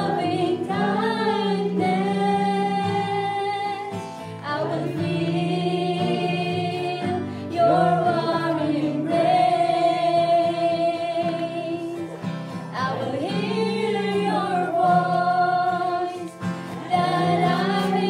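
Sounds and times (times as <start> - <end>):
voices singing along: 0.0 - 18.0
woman singing worship song: 0.0 - 18.0.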